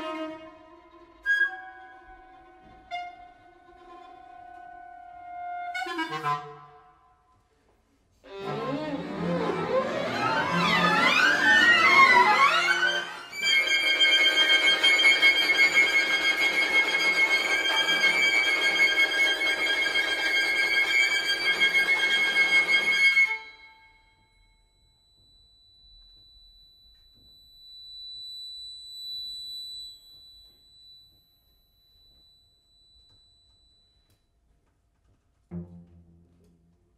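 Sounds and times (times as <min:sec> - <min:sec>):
chamber ensemble glissandi: 0:08.4 - 0:24.5.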